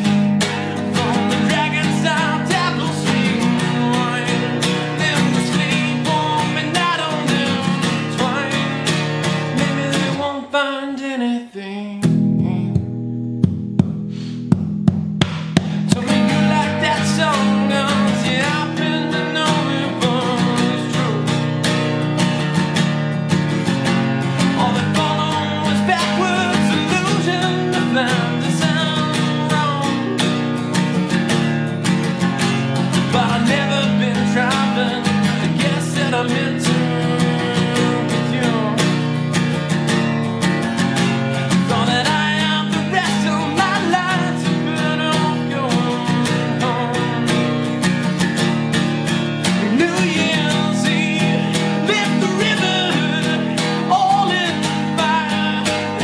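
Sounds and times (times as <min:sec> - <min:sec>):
acoustic guitar strumming: 0:00.0 - 0:11.1, 0:12.0 - 0:56.0.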